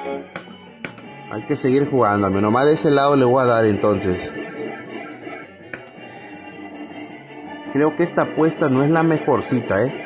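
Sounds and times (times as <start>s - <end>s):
slot machine electronic tune: 0.0s - 10.0s.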